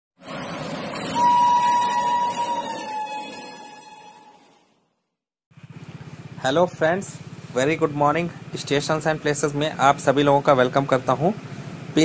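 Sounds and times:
train rumbling on track: 0.2s - 4.2s
train horn blast: 0.9s - 4.7s.

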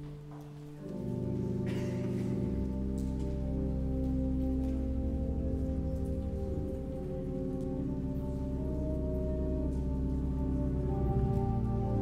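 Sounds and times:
church organ sustained chords: 0.0s - 12.0s.

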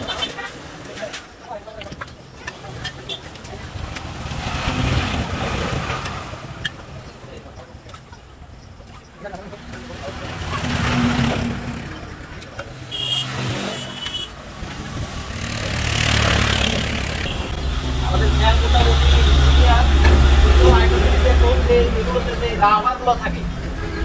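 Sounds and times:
vehicles passing by: 0.0s - 24.0s
low engine rumble: 14.5s - 24.0s.

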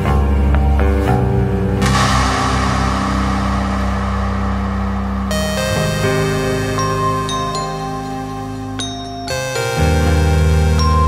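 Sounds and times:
low rumbling drone: 0.0s - 11.0s
whoosh of hissing noise: 1.8s - 8.7s.

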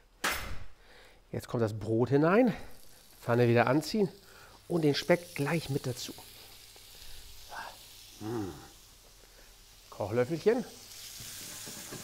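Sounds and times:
bacon and bread sizzling in oil: 2.4s - 12.0s.

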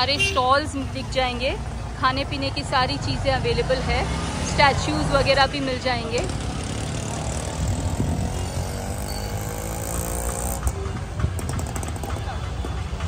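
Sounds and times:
motor traffic rumble: 0.0s - 13.0s.

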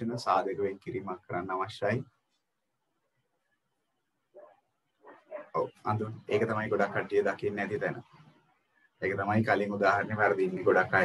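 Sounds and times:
person speaking: 5.2s - 8.0s, 9.0s - 11.0s.

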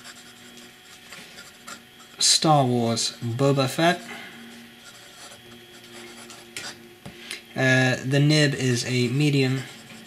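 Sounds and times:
pen nib scratching on paper: 0.0s - 2.2s, 4.8s - 6.8s.

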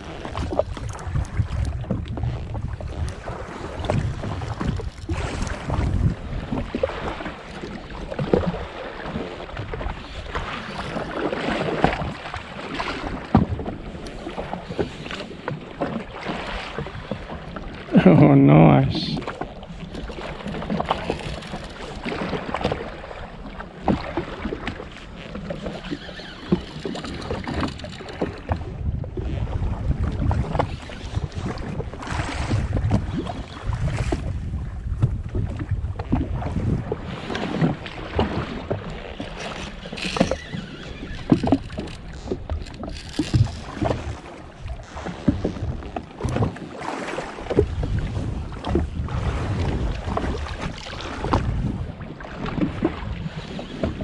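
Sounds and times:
small waves slapping hull: 0.0s - 54.0s
wind on microphone: 0.0s - 54.0s.

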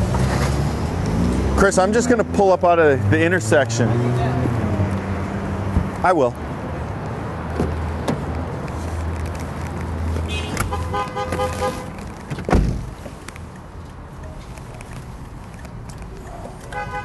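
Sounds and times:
horn toot: 10.3s - 12.0s, 16.7s - 17.0s
loud thump: 12.3s - 12.9s.

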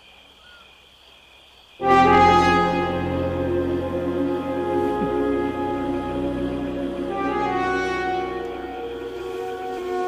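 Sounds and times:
crickets chirring: 0.0s - 10.0s
orchestral brass chord: 1.8s - 10.0s.

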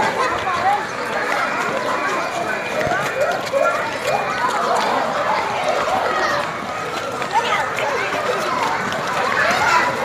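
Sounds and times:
children calling and chattering: 0.0s - 10.0s
running footsteps: 0.0s - 10.0s.

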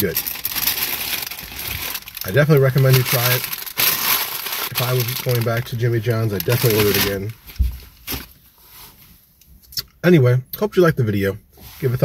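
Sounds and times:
paper wrapper crinkling: 0.0s - 8.4s.

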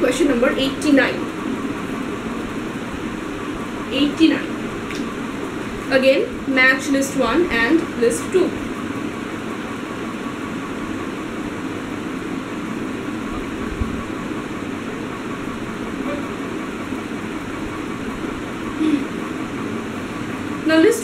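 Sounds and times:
steady background noise: 0.0s - 21.0s.

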